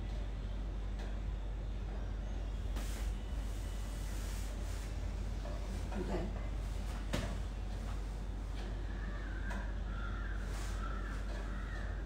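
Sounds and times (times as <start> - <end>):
steady low hum: 0.0 - 12.0
harsh bird calls: 8.7 - 12.0.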